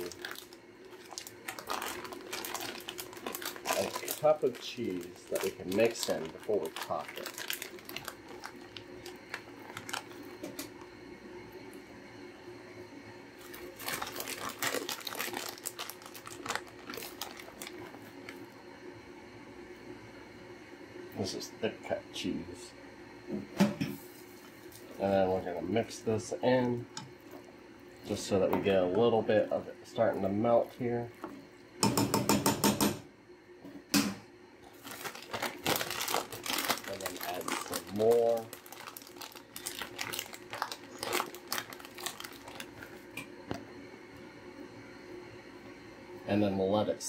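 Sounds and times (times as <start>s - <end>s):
plastic bag crinkling: 0.0s - 10.4s, 13.4s - 18.4s, 34.7s - 43.2s
faint steady hum: 0.0s - 47.0s.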